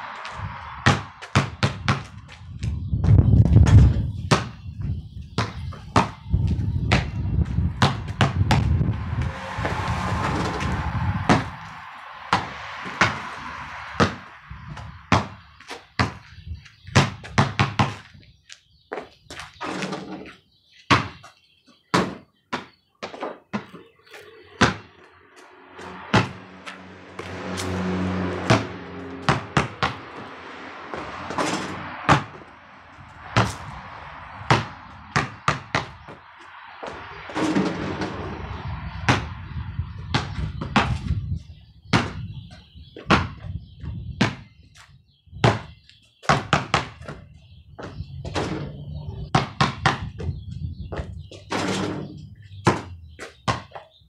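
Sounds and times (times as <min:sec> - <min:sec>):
basketball bouncing on concrete: 0:00.8 - 0:08.8, 0:14.0 - 0:14.2, 0:14.8 - 0:18.2, 0:20.9 - 0:21.3, 0:21.9 - 0:23.9, 0:24.6 - 0:24.9, 0:29.2 - 0:30.0, 0:32.1 - 0:32.4, 0:34.5 - 0:36.2, 0:40.1 - 0:41.2, 0:41.9 - 0:42.3, 0:43.0 - 0:44.8, 0:45.4 - 0:48.4, 0:49.3 - 0:51.1, 0:52.6 - 0:53.8
deep rumble: 0:06.2 - 0:15.7, 0:24.4 - 0:42.4.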